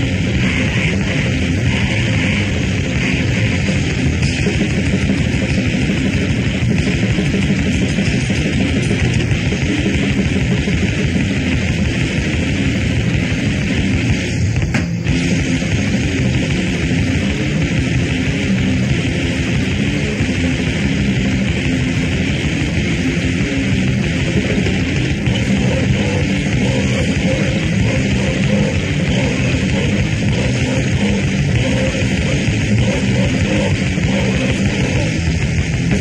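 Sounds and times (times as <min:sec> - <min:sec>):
distorted hardcore punk music: 0:00.0 - 0:36.0.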